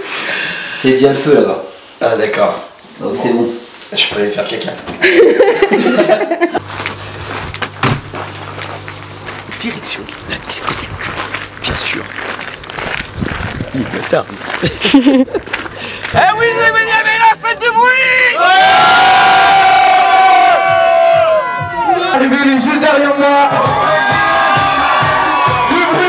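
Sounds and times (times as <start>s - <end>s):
steady low hum: 5.0s - 16.7s
door shutting thump: 7.6s - 8.1s
crowd shouting and cheering: 16.1s - 26.0s
long held shout: 16.2s - 22.2s, 23.4s - 26.0s.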